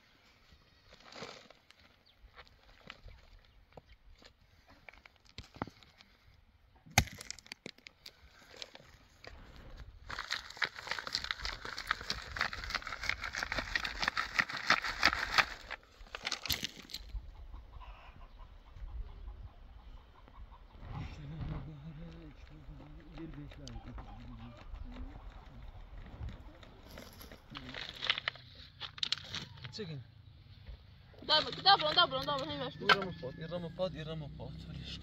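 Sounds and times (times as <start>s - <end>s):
chicken clucking: 17.1s - 21.4s, 22.2s - 27.6s.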